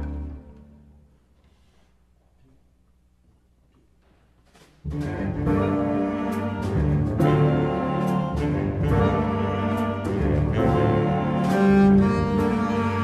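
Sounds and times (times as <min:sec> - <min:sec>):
jazz big band playing: 0:04.9 - 0:13.0.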